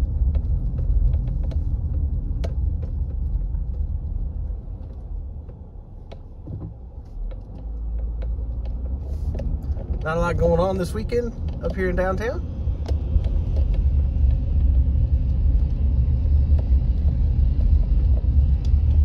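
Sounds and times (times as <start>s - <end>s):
car engine and tyres rumble: 0.0s - 19.0s.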